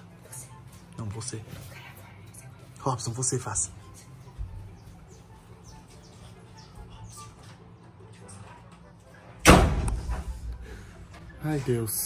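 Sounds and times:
loud bang: 9.4s - 10.4s.

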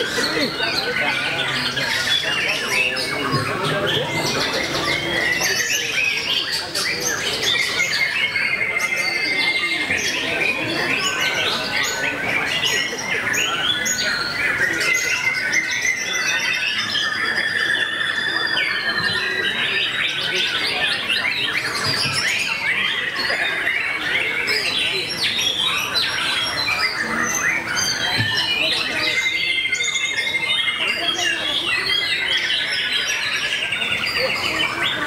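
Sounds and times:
songbirds singing: 0.0s - 35.0s.

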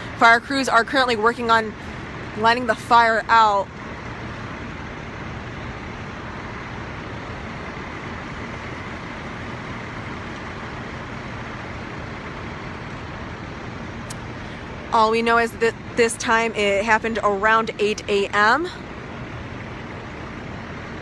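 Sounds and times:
fire truck engines droning: 0.0s - 21.0s.

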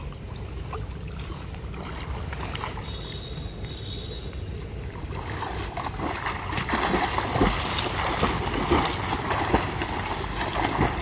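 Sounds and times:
pool water splashing: 0.0s - 11.0s
swimming strokes and kicks: 5.2s - 11.0s.

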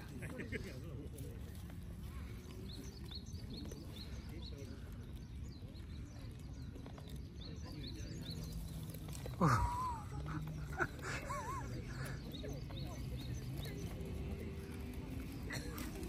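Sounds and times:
deer chewing leafy branches: 0.0s - 16.0s
distant murmur of voices: 0.0s - 16.0s.

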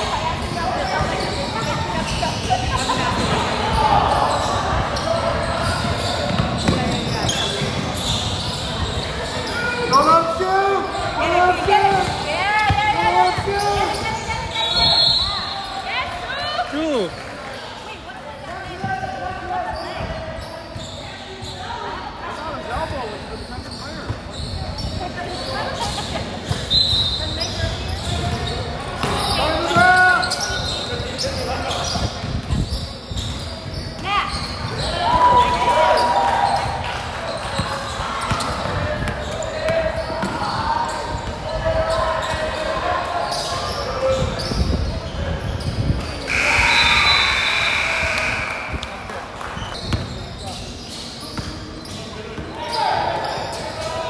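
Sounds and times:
people shouting in a gym: 0.0s - 17.1s, 26.7s - 32.1s, 33.8s - 44.9s, 46.2s - 49.2s, 52.1s - 54.0s.

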